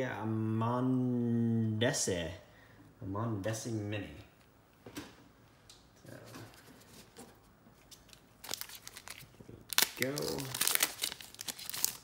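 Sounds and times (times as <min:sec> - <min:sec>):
plastic wrapper crinkling: 0:07.8 - 0:12.0.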